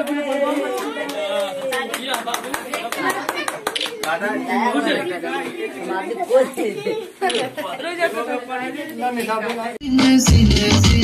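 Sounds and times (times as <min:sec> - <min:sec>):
quick hand claps: 0:00.0 - 0:04.2.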